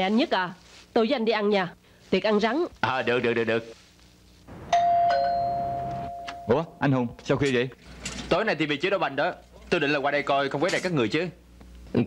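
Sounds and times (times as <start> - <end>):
two-note doorbell chime: 4.7 - 6.9.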